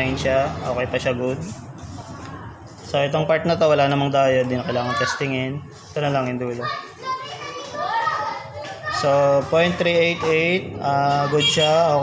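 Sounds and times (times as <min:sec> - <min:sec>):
children chattering: 0:02.0 - 0:12.0.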